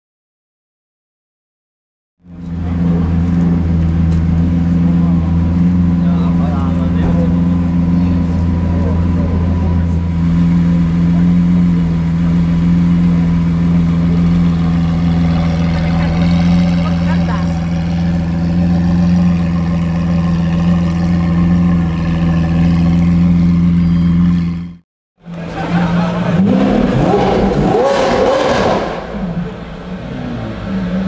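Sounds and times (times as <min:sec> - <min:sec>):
car engine idling: 0:02.2 - 0:31.0.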